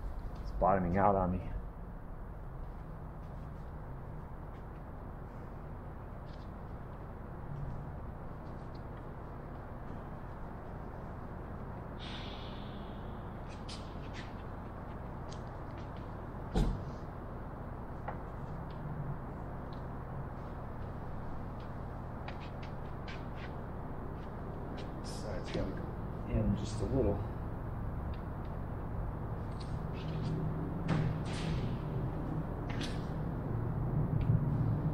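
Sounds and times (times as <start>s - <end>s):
workshop hall hum: 0.0s - 34.9s.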